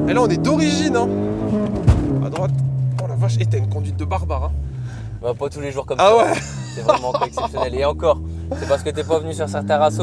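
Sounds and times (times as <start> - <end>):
car engine accelerating: 0.0 - 10.0
loud thump: 1.7 - 2.6.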